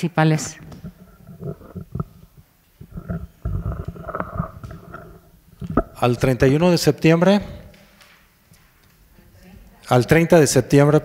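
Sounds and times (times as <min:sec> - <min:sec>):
microphone handling bumps and rubbing: 0:00.4 - 0:07.9.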